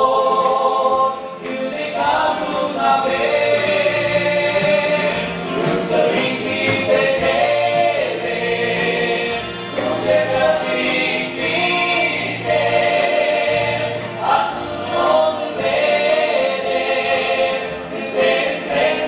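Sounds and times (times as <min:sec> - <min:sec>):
vocal group singing in harmony: 0:00.0 - 0:19.0.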